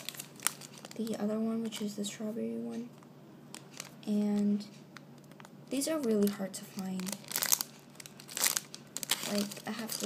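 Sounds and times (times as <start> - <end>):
plastic bag crinkling: 0.0 - 2.1, 2.9 - 10.0.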